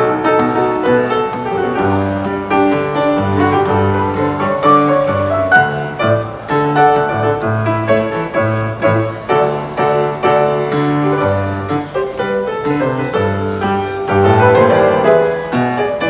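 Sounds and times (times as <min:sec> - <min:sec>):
solo grand piano: 0:00.0 - 0:16.0.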